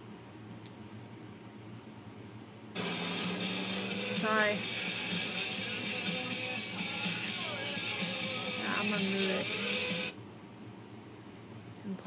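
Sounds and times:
television soundtrack: 2.7 - 12.0.

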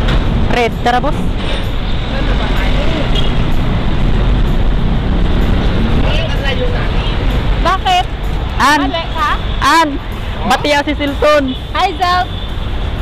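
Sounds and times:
heavy road traffic: 0.0 - 13.0
truck driving past: 1.1 - 8.5.

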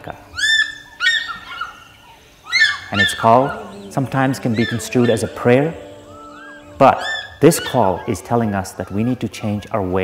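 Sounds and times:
eagle yelping calls: 0.0 - 10.0.

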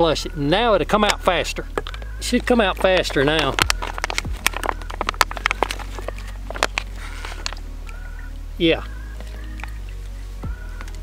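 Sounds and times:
water spurting into plastic bottle: 2.8 - 7.6.

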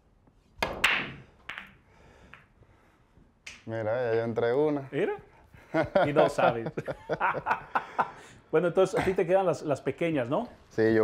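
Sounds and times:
cue tip striking cue ball: 0.6 - 2.5
pool balls clacking: 0.6 - 2.5.

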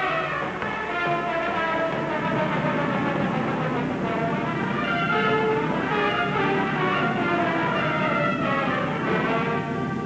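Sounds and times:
orchestral music with brass chords: 0.0 - 10.0.

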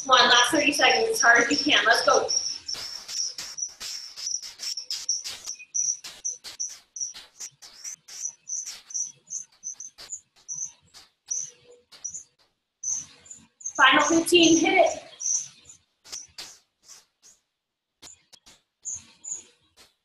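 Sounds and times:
noisy pedal strokes: 0.0 - 14.2
bike trainer chirping squeak: 0.8 - 17.4, 18.0 - 20.0.

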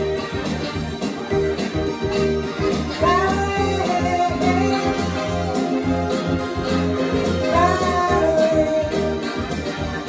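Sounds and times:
electric guitar: 0.0 - 10.0
repeating bass line: 0.0 - 10.0.

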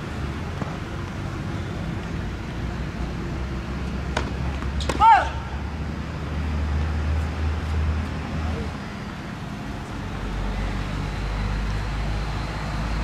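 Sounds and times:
low traffic rumble: 0.0 - 13.0
tennis ball knocks: 4.1 - 5.1.

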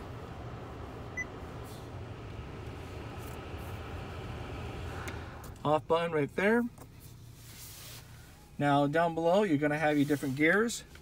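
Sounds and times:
car blower fan running: 0.0 - 6.0.

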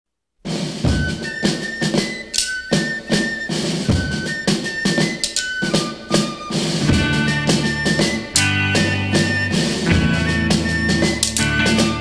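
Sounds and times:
drum kit beat: 0.5 - 12.0
high held melody line: 0.8 - 12.0.

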